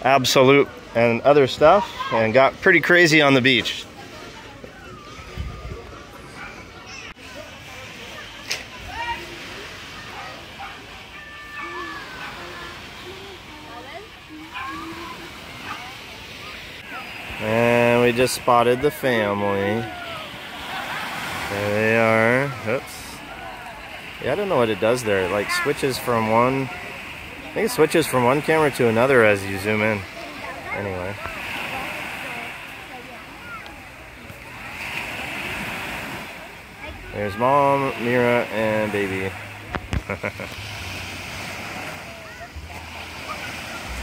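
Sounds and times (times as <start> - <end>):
distant voices: 0.0 - 44.0
sea surf at shore: 0.0 - 44.0
small waves: 0.0 - 44.0
wind: 0.0 - 44.0.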